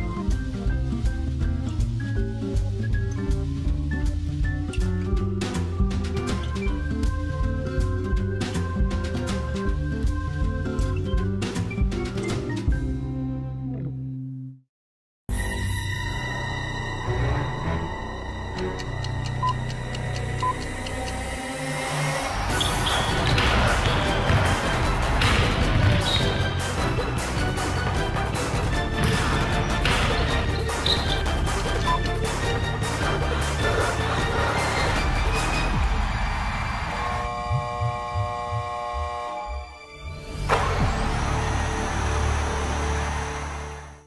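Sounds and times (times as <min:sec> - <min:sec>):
sports broadcast intro music: 0:21.3 - 0:44.0
throbbing bass pulses: 0:37.0 - 0:39.4
low drone: 0:37.1 - 0:44.0.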